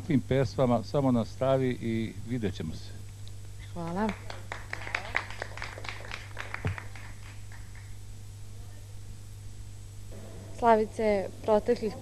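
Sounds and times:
low electrical hum: 0.0s - 12.0s
small group clapping: 3.8s - 8.0s.

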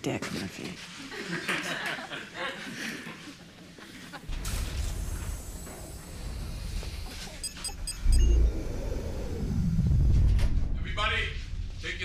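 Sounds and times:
sliding door low rumble: 4.3s - 12.0s
short electronic beeps: 7.4s - 8.4s.

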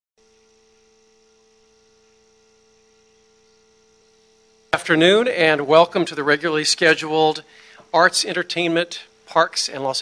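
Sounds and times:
faint electrical hum: 0.2s - 10.0s.

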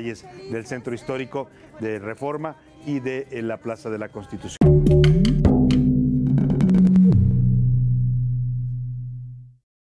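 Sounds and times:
held low music tone: 4.6s - 9.6s.

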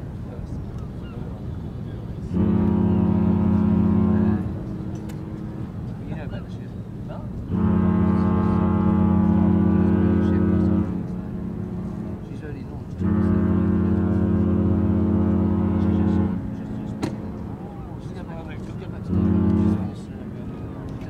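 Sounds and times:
deep ship horn blasts: 2.2s - 21.0s.

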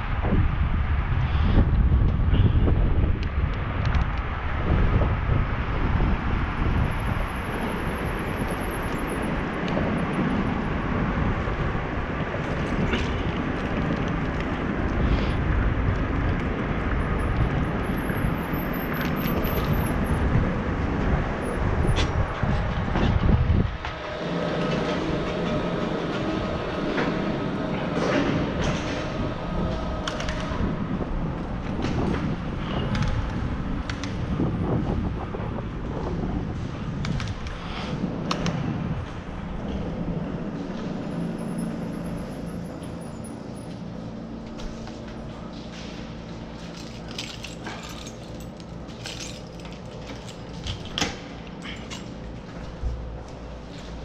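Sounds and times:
wind buffeting microphone: 0.0s - 46.6s
rolling road noise: 0.0s - 54.0s.

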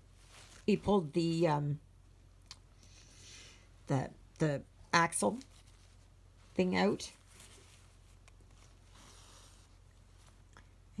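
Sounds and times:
low steady hum: 0.0s - 11.0s
thread drawn through fabric: 7.1s - 10.5s.

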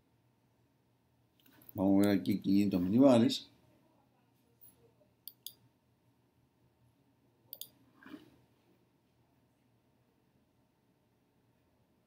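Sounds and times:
computer mouse clicks: 5.2s - 5.6s, 7.5s - 8.2s.

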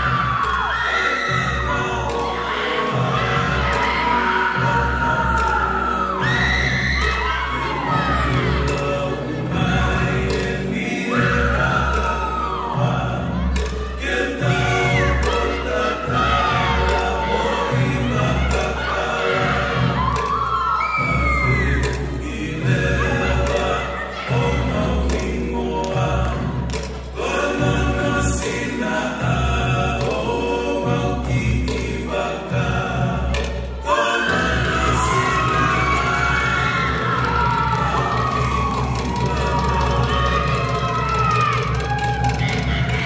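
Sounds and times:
choir singing with accompaniment: 0.0s - 43.0s.

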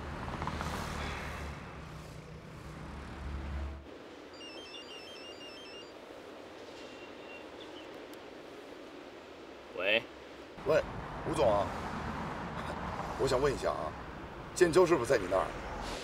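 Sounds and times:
faint high chirps: 4.3s - 6.0s.

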